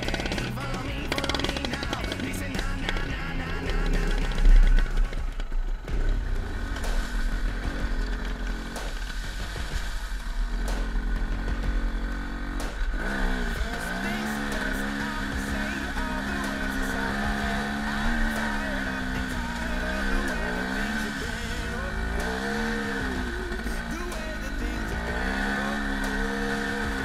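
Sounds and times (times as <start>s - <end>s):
dirt bike engine revving: 0.0s - 27.0s.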